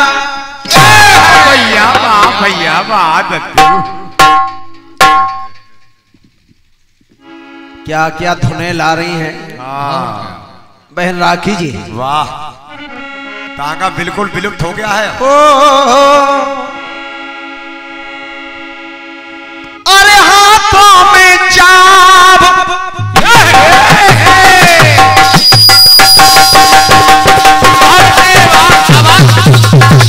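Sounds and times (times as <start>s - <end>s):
man singing: 0.0s - 4.0s, 13.4s - 16.9s, 19.9s - 25.4s, 26.4s - 29.5s
harmonium holding a chord: 7.2s - 8.4s, 12.7s - 15.1s, 16.0s - 20.6s
bell-like percussion strokes: 25.2s - 30.0s.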